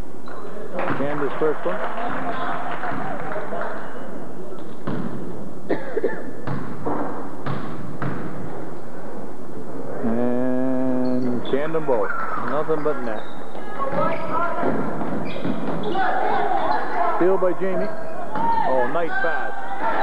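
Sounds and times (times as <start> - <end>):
basketball bouncing on wooden floor: 6.4 - 8.6
voices chattering: 10.0 - 20.0.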